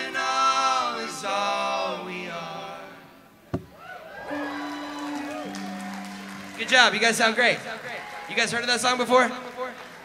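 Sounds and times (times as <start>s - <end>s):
sharp thump: 3.5s - 3.7s.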